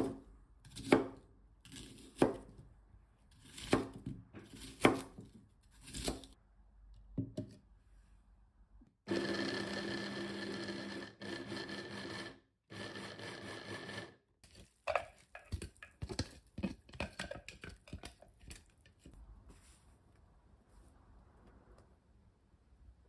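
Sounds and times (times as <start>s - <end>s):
electric food chopper motor: 9.1s - 14.2s.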